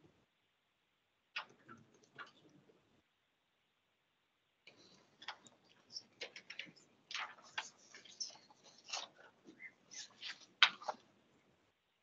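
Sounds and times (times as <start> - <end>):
papers rustling: 4.7 - 11.1.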